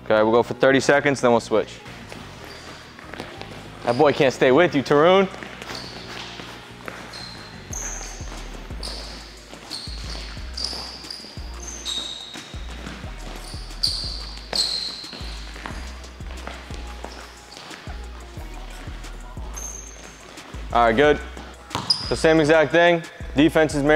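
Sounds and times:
sneakers squeaking on hardwood: 0:01.9 - 0:22.7
music with deep bass: 0:05.3 - 0:12.0, 0:12.6 - 0:22.6, 0:23.2 - 0:23.9.

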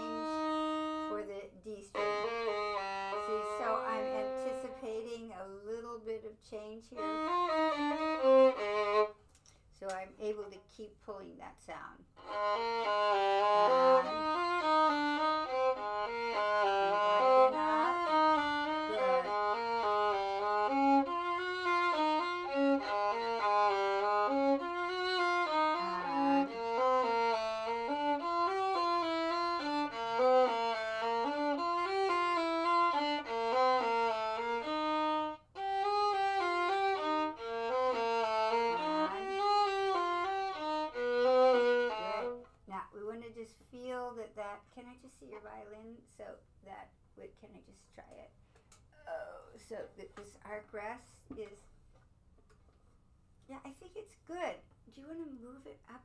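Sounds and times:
solo violin quick bowed notes: 0:00.0 - 0:01.2, 0:01.9 - 0:04.8, 0:12.2 - 0:42.4.

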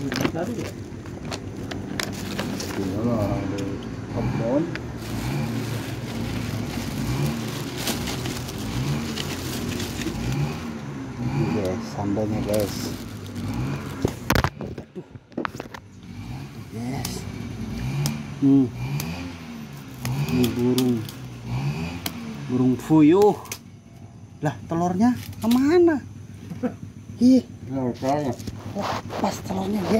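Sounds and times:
paper and plastic crinkling: 0:00.0 - 0:03.1, 0:04.9 - 0:10.6, 0:12.4 - 0:15.8
steady low rumble: 0:00.0 - 0:15.9.

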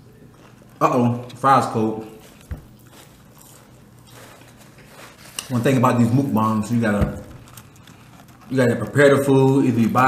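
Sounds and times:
faint room noise: 0:00.0 - 0:10.0
soft thump: 0:07.0 - 0:07.5.

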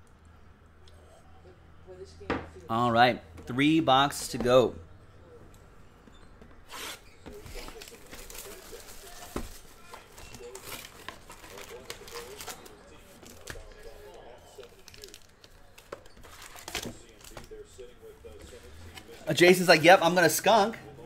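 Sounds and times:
plastic wrap crinkling: 0:06.7 - 0:17.4
plastic shrink wrap tearing: 0:14.6 - 0:17.4.

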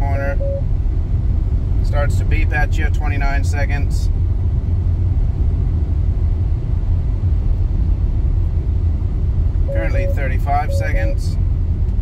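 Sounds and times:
road and tyre rumble: 0:00.0 - 0:12.0.

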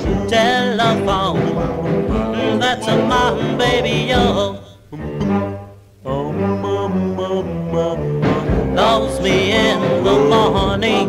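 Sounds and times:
bass line: 0:00.0 - 0:11.0
vocal group singing harmony: 0:00.0 - 0:11.0.

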